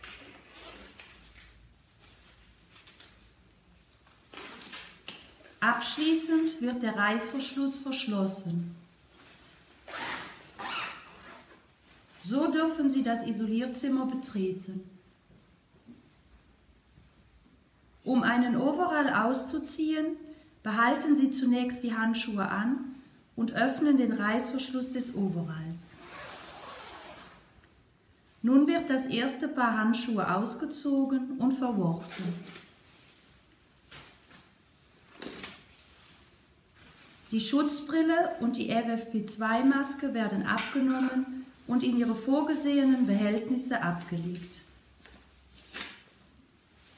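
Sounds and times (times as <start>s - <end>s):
zipper being pulled up: 0.0s - 1.5s, 9.7s - 11.8s, 25.8s - 27.6s, 31.9s - 32.7s
disposable gloves rustling: 0.0s - 13.0s, 30.4s - 38.5s, 39.3s - 46.9s.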